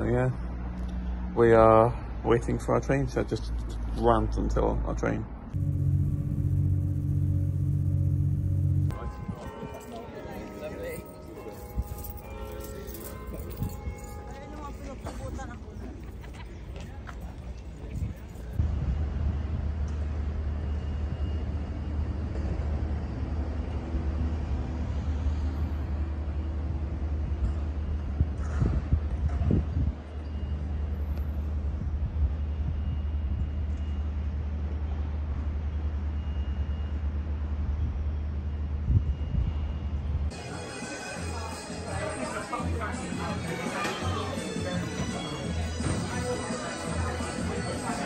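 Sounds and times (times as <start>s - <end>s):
low street rumble: 0.0s - 33.2s.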